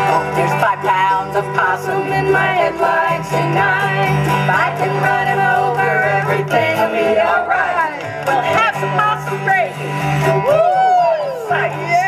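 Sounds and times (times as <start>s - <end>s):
voices singing: 0.0s - 9.8s, 11.2s - 12.0s
banjo: 0.0s - 12.0s
bluegrass band playing: 0.0s - 12.0s.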